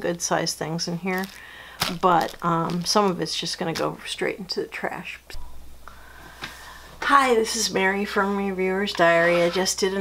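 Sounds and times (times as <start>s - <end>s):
woman's voice: 0.0s - 5.4s, 7.0s - 10.0s
steady low hum: 5.2s - 9.3s.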